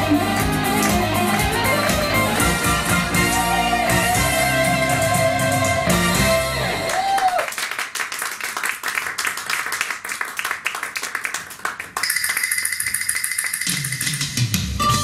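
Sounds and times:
pop music medley: 0.0s - 7.2s, 13.7s - 15.0s.

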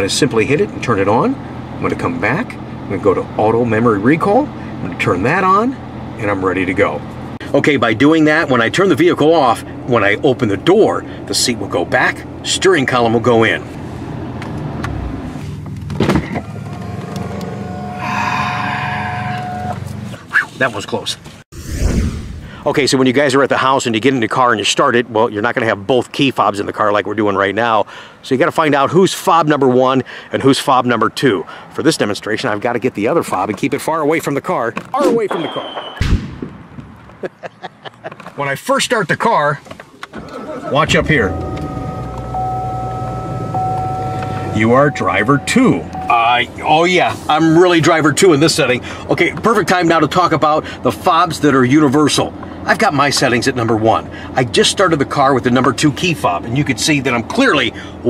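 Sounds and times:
electric seat motors whirring: 16.4s - 18.3s, 40.1s - 45.6s
car engine idling: 39.9s - 49.4s
steady low hum: 40.4s - 47.4s.

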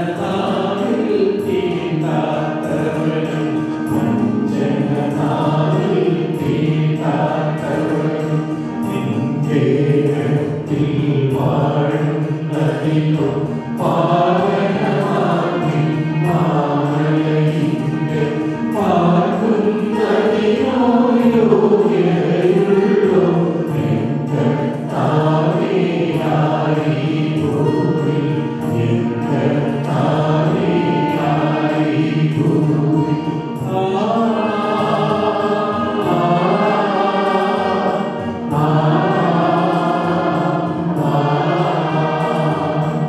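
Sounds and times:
voices chanting: 0.0s - 43.0s.

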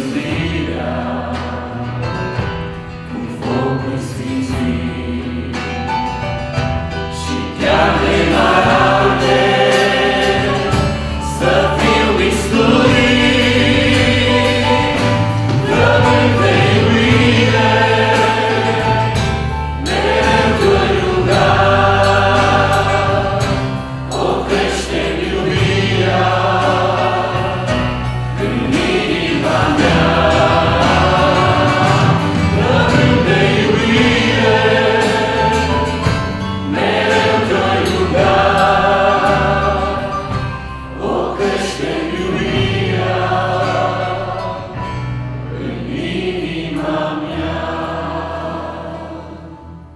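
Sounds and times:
strummed acoustic guitar: 0.0s - 46.0s
electric bass: 0.0s - 49.9s
people singing together: 0.0s - 49.9s.

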